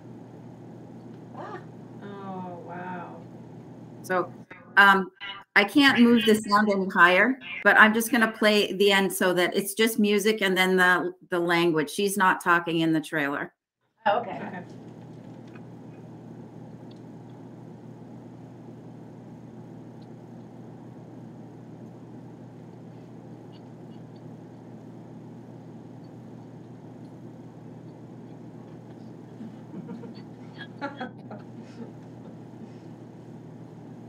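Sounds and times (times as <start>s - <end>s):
low hum of line noise: 0.0s - 13.4s, 14.1s - 34.0s.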